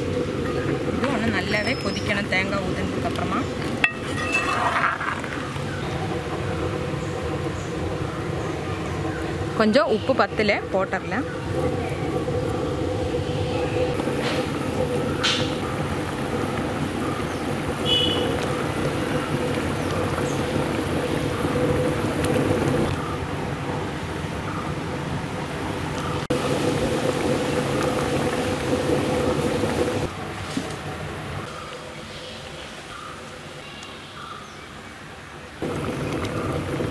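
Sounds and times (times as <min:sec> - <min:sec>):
stove burner rushing: 0:00.0 - 0:23.2, 0:26.3 - 0:30.7, 0:35.6 - 0:36.9
faint constant hum: 0:00.0 - 0:36.9.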